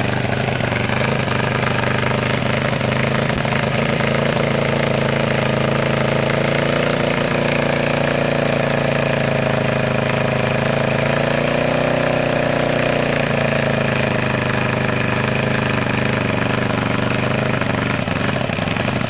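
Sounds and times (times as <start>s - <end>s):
snowmobile engine idling: 0.0s - 19.0s.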